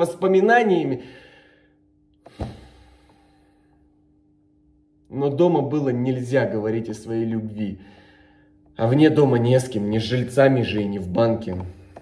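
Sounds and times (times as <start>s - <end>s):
room echo of speech: 0.0s - 1.4s, 5.0s - 11.9s.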